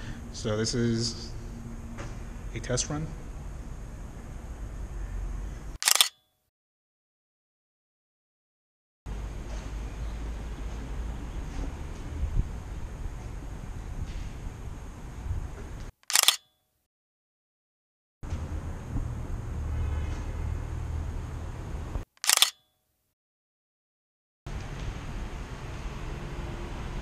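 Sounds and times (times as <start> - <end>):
camera shutter clicks: 5.8 - 6.2, 16.0 - 16.5, 22.2 - 22.6.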